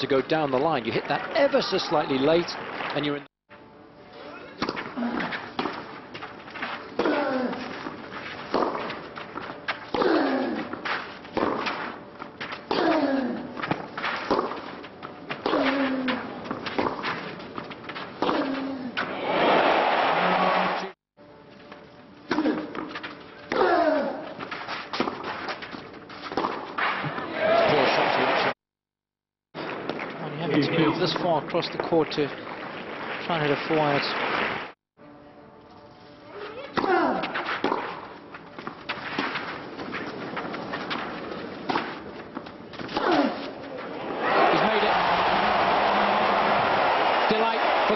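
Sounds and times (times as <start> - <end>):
racket striking tennis ball: 4.6 - 19.1, 22.3 - 27.1, 36.7 - 43.6
crowd noise: 19.0 - 21.0, 27.0 - 28.6, 43.6 - 47.9.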